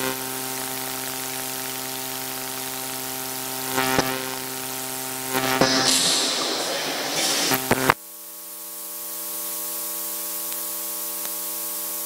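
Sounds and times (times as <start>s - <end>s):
electrical hum: 2.2s - 8.0s
burst of hiss: 5.5s - 8.0s.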